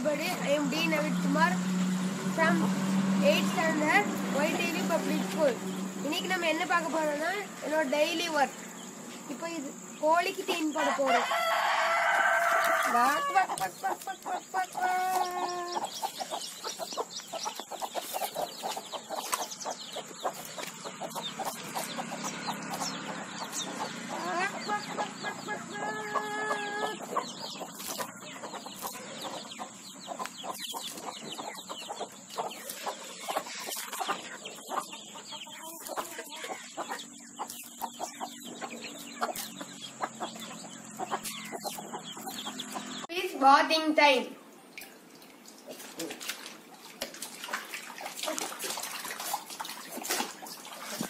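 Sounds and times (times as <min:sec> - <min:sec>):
chicks peeping: 0:00.0 - 0:43.1
hens clucking: 0:00.0 - 0:43.1.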